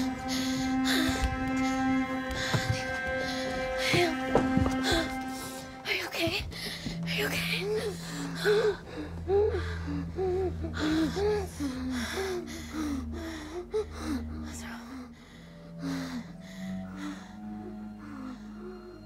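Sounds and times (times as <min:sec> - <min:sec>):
low drone in film score: 0:00.0 - 0:19.0.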